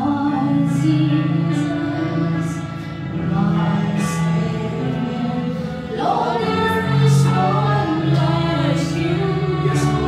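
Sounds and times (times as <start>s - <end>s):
woman singing gospel song: 0.0s - 10.0s.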